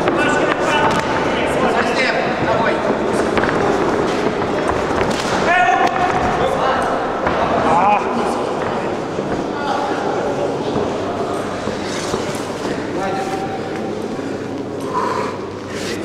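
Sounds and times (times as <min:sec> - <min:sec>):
shouting voices echoing: 0:05.3 - 0:14.0.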